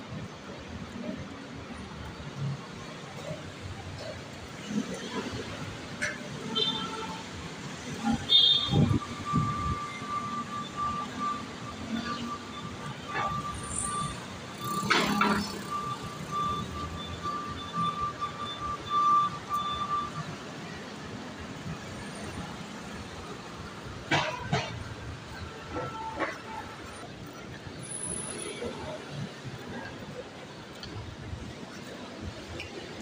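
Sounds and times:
street traffic: 0.0 - 33.0
high electronic beeping: 8.7 - 20.4.

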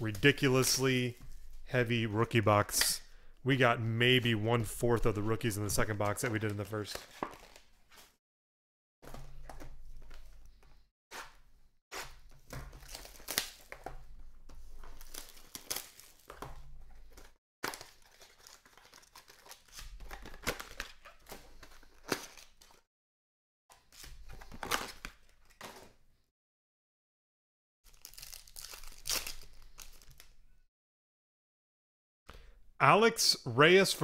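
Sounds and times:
cards shuffled and handled: 5.2 - 8.1, 14.5 - 22.8
foil wrappers torn and crinkled: 12.8 - 13.8, 14.9 - 16.3, 17.6 - 22.8, 27.9 - 30.3.

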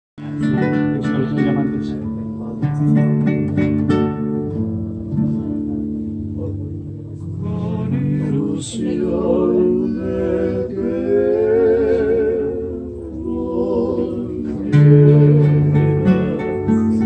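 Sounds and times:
acoustic guitars playing bolero: 0.2 - 17.0.

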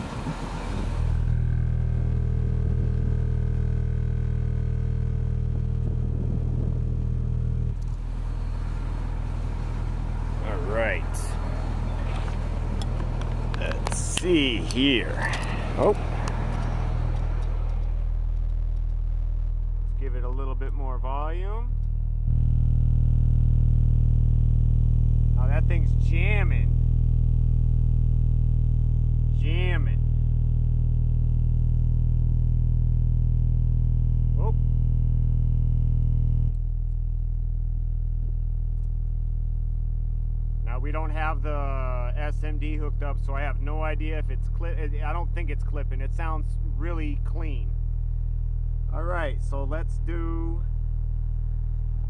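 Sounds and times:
subwoofer low bass tone: 0.0 - 52.0.

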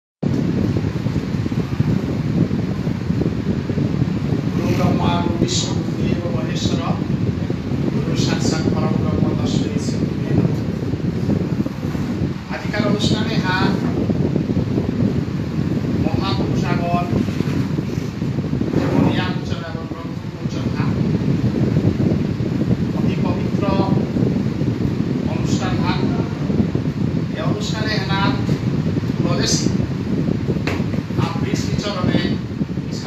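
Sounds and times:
wind rumble on microphone: 0.2 - 33.0.

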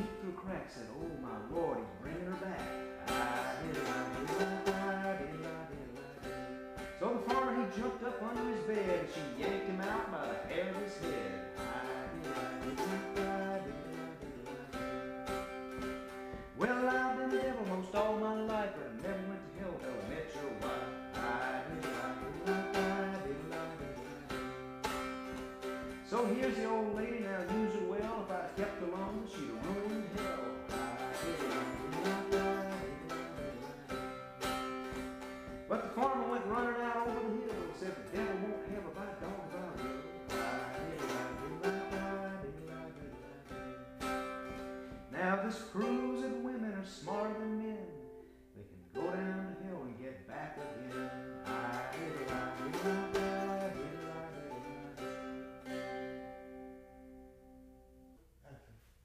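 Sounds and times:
plucked strings steady beat: 0.0 - 58.4.

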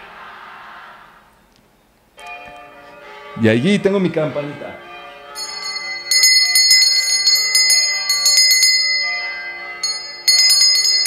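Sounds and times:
echoing shouted cheer: 0.0 - 1.4.

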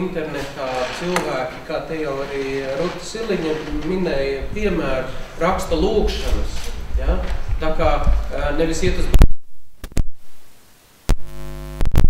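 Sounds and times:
steady buzzing hum: 1.0 - 12.0
sharp electrical clicks: 5.4 - 10.1.

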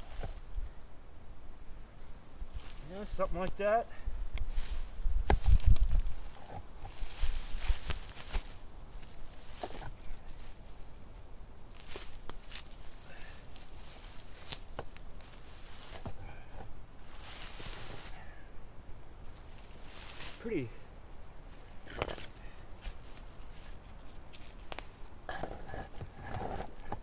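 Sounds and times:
dry leaves rustling underfoot: 0.0 - 0.8, 2.0 - 27.0.

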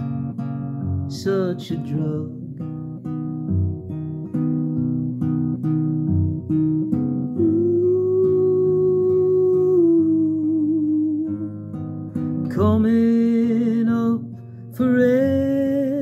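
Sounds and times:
fingerpicked classical guitar: 0.0 - 16.0
man singing ooh: 7.3 - 11.6, 12.5 - 16.0.

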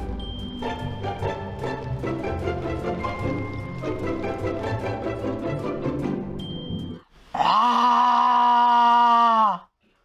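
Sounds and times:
person imitating lion roar: 7.3 - 9.7.

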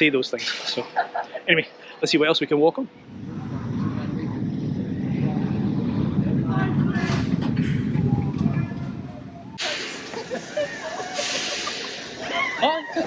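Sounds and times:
ride cars rumbling on steel track: 3.0 - 13.0.

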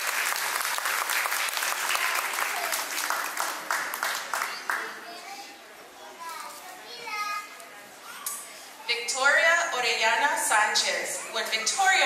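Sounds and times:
children chattering and calling out: 4.3 - 9.3.

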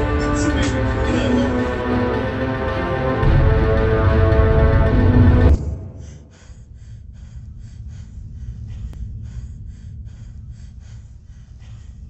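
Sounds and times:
steady low rumble: 0.0 - 12.0
person breathing rapidly: 5.8 - 12.0.

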